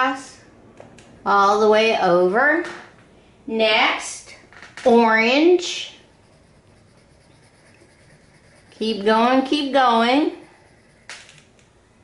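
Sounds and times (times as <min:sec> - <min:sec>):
crayon scribbling on paper: 0:05.6 - 0:11.5.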